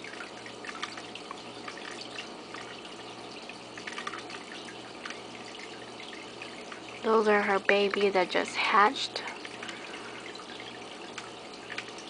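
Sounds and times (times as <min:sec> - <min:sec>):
aquarium water trickling: 0:00.0 - 0:12.0
constant low hum: 0:00.0 - 0:12.0.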